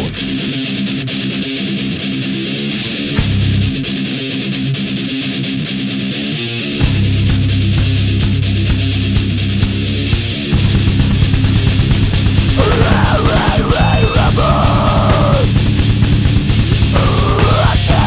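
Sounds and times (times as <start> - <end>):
heavy bass and drums: 0.0 - 1.8, 2.9 - 4.4, 6.8 - 18.0
electric guitar riff: 0.0 - 18.0.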